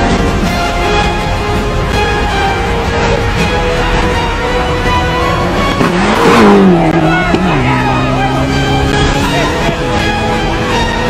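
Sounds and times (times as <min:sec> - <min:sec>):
rally car engine passing by: 0:04.7 - 0:11.0.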